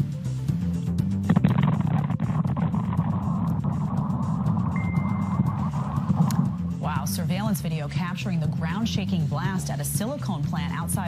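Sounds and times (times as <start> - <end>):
news background music: 0.0 - 11.0.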